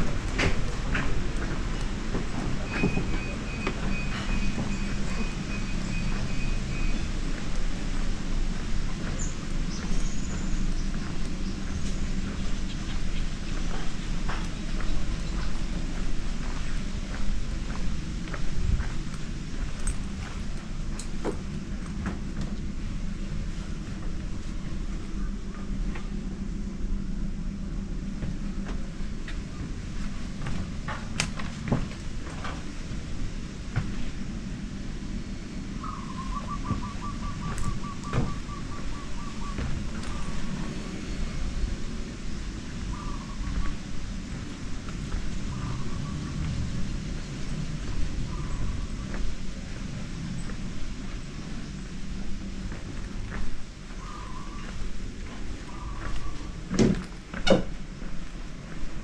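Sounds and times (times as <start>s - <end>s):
steady low rumble: 0.0s - 59.0s
bird trilling and calling: 35.8s - 40.5s, 54.0s - 54.8s, 55.6s - 56.5s.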